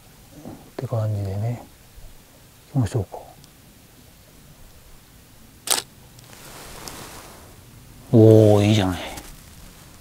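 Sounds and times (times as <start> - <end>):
camera shutter click: 5.7 - 5.9.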